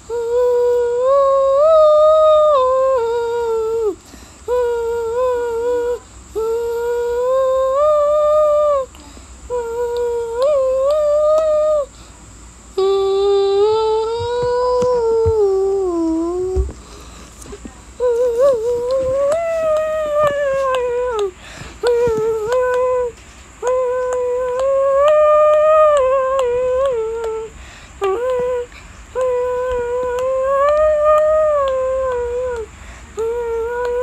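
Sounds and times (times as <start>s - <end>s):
person humming: 0.0s - 12.0s, 12.7s - 34.0s.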